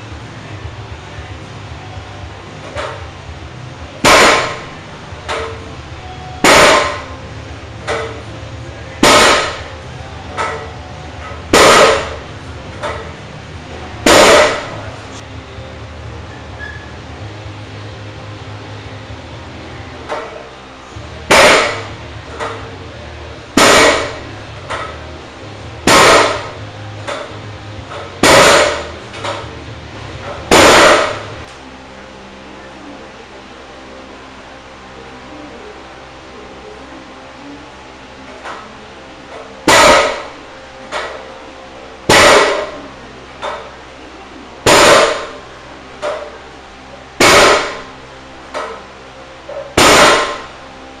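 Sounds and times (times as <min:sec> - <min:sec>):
barbell banging on platform: 0:06.4 - 0:07.2, 0:09.0 - 0:12.2, 0:14.0 - 0:14.8, 0:21.3 - 0:22.7, 0:23.6 - 0:25.0, 0:25.8 - 0:29.6, 0:30.2 - 0:31.4, 0:42.1 - 0:42.8, 0:49.5 - 0:50.5
barbell clanking on platform: 0:10.3 - 0:12.2, 0:14.1 - 0:14.8.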